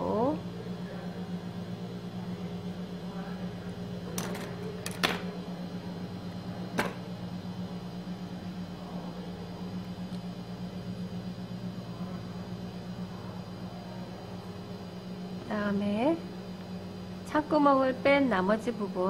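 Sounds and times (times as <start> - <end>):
low electrical hum: 0.0 - 19.0.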